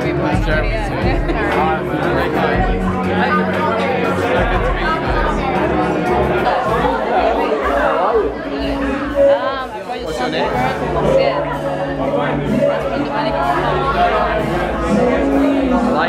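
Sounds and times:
background music: 0.0s - 16.0s
people chatting: 0.0s - 16.0s.

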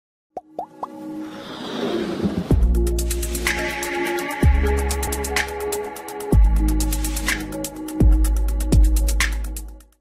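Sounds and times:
cartoon pops rising in pitch: 0.4s - 1.0s
electronic music riser: 1.2s - 7.4s.

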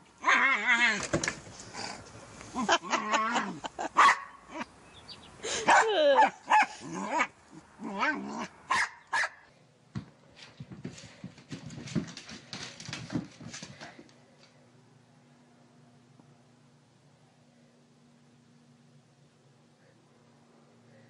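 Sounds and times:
puppy barking and yipping: 3.9s - 4.6s, 5.6s - 7.3s, 8.0s - 9.4s
quiet knocks and patters: 9.9s - 14.6s.

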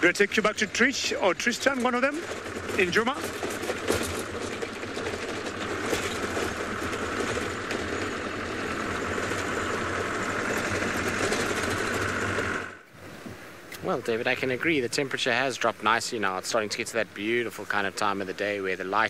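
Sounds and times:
vehicle engine running: 0.0s - 13.0s
wind: 0.0s - 19.0s
bodywork rattling: 0.1s - 12.8s.

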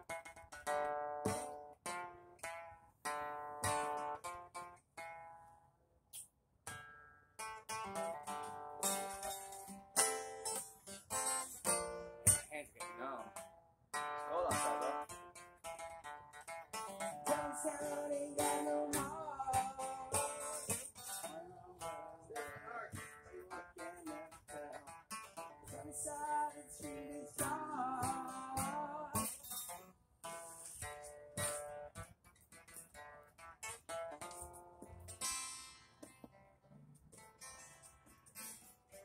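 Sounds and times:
acoustic guitar: 0.0s - 39.0s.

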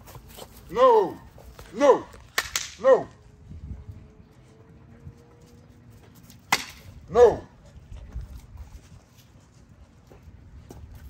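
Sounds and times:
puppies scuffling and playing: 0.0s - 1.7s, 3.8s - 6.5s, 7.5s - 11.0s.

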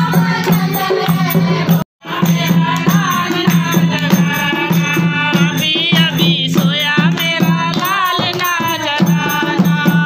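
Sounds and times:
hand drum rhythm: 0.0s - 10.0s
women singing together: 0.0s - 10.0s
hand-clapping: 0.4s - 1.8s, 7.1s - 9.5s.

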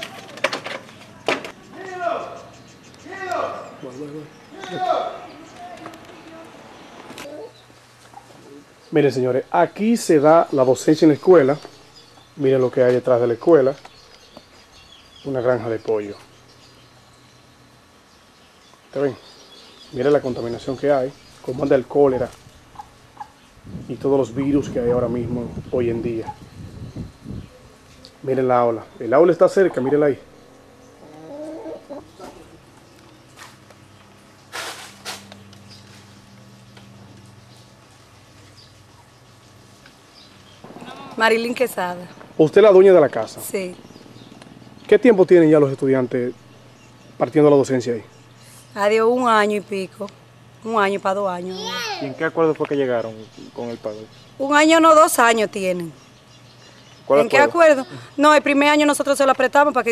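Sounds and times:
chickens clucking: 22.7s - 23.4s, 27.6s - 33.3s.

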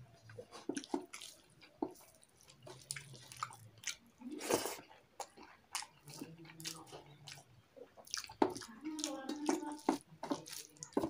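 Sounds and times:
chewing with mouth clicks: 0.2s - 11.0s.

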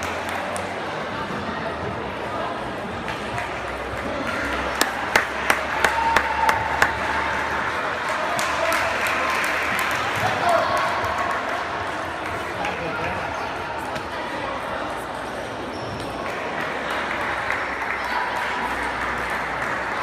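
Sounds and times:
murmur of voices: 0.0s - 20.0s.

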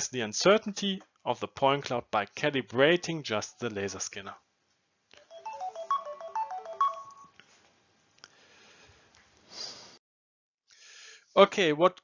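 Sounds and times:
electronic melody: 5.2s - 7.3s.

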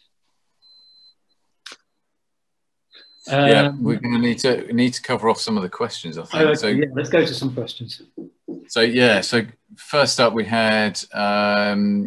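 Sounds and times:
high-pitched whine: 3.0s - 8.0s, 8.7s - 12.0s.

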